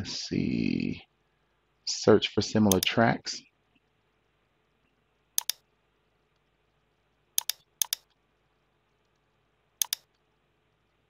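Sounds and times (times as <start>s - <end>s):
computer mouse clicks: 2.7s - 3.0s, 5.4s - 5.6s, 7.4s - 8.2s, 9.8s - 10.2s.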